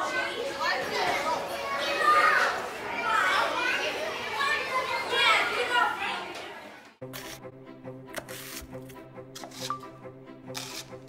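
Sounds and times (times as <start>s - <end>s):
children talking and calling out: 0.0s - 7.0s.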